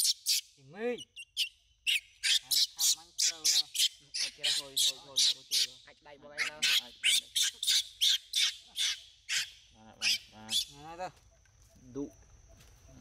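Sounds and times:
baby monkey shrieking: 0.0s - 10.8s.

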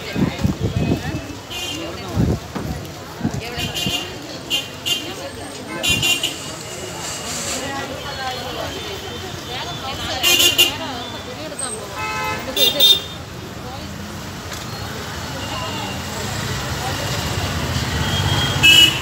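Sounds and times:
motorbikes passing: 0.0s - 19.0s
murmur of voices: 0.0s - 19.0s
vehicle horn toots: 18.1s - 19.0s.

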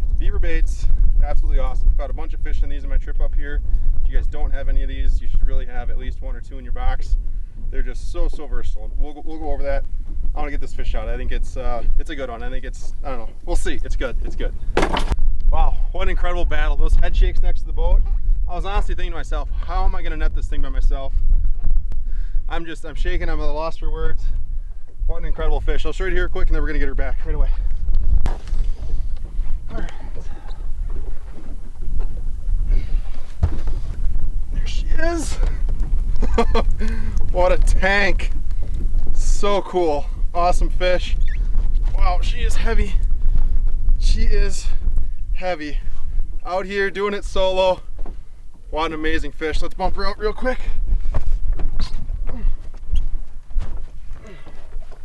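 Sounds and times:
wind rumbling on microphone: 0.0s - 55.0s.

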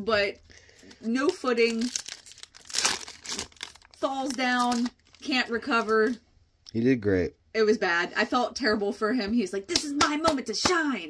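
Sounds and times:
foil wrapper tearing and crinkling: 1.2s - 5.3s.

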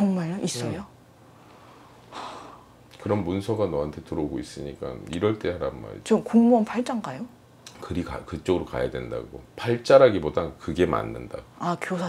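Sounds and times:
person exhaling: 2.1s - 2.7s.

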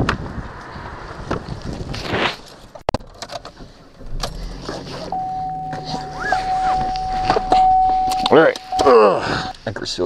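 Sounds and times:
clicks and rattles: 2.9s - 4.9s
car engine rumble: 3.0s - 9.5s
steady high electronic tone: 5.1s - 9.2s.

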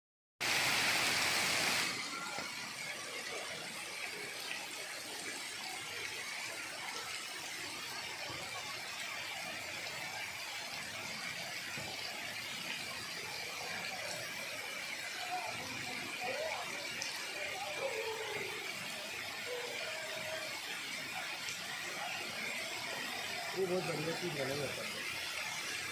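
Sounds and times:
fountain water jets splashing: 0.4s - 25.9s.

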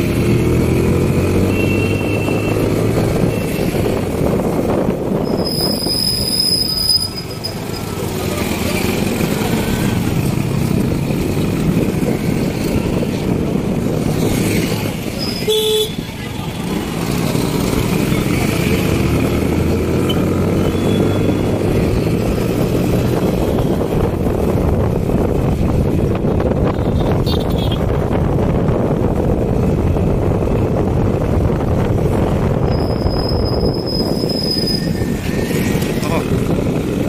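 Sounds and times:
engine and road noise: 0.0s - 37.0s.

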